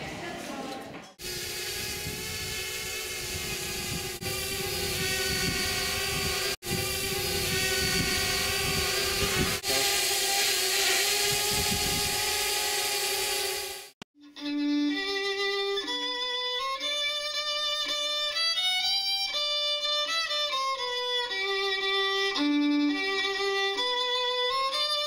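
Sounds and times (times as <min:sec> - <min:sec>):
drone propellers whining: 0:01.2 - 0:14.0.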